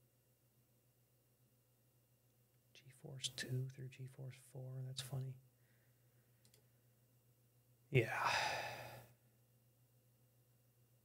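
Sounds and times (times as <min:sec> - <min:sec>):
faint low hum: 0:00.0 - 0:11.0
man sighing yeah: 0:08.0 - 0:09.1.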